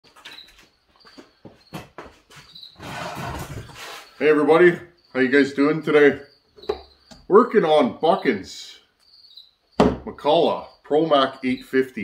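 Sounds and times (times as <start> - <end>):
small squeaks: 0.1 - 4.4
rustling and shuffling: 0.1 - 4.8.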